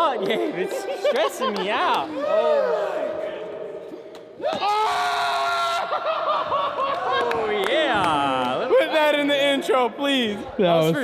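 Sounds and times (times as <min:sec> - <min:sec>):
people laughing and yelling: 0:00.0 - 0:03.2, 0:04.4 - 0:09.6
long loud scream: 0:04.5 - 0:05.9.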